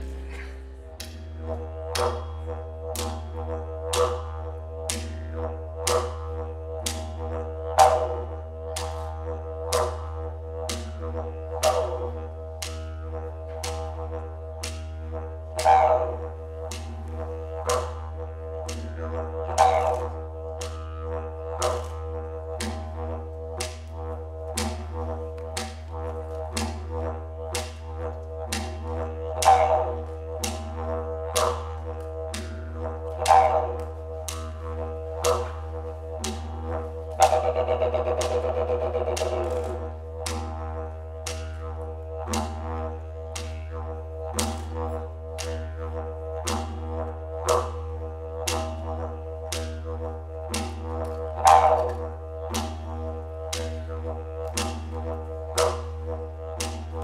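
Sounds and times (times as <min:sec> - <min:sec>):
didgeridoo drone: 0:00.0 - 0:57.0
sharp tapping beat: 0:21.5 - 0:40.6.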